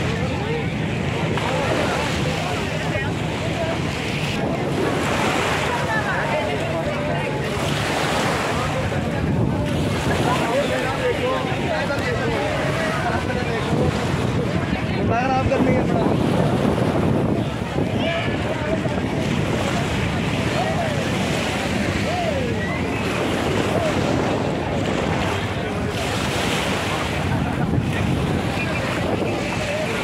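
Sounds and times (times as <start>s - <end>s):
crowd of voices chattering: 0.0s - 30.0s
small sea waves washing: 0.0s - 30.0s
wind on microphone: 0.0s - 30.0s.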